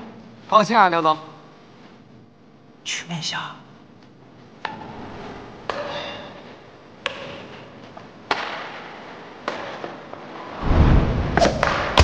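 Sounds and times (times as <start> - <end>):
shuttlecock struck by rackets: 7.0 - 7.7
loud deep boom: 10.6 - 12.0.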